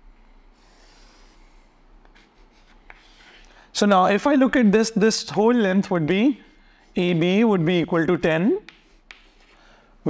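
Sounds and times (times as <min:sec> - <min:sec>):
chalk scratching on blackboard: 0:02.1 - 0:03.5, 0:08.7 - 0:09.6.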